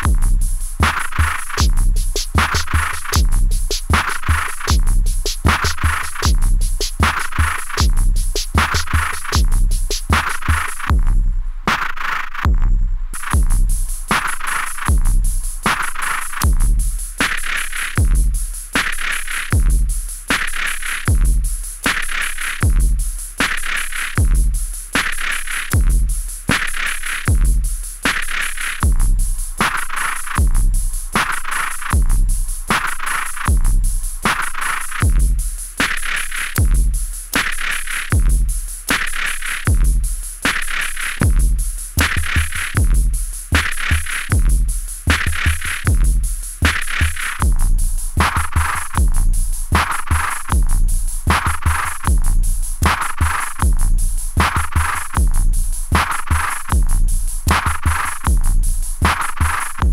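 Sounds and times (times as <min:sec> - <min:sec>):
drum machine rhythm: 0:00.0 - 0:59.9
deep kick thumps: 0:12.5 - 0:13.7, 0:56.7 - 0:57.1.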